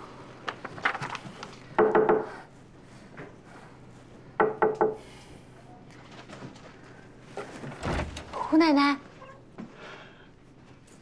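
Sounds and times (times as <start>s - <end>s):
knocking on a wooden door: 1.8s - 2.3s, 4.4s - 5.0s.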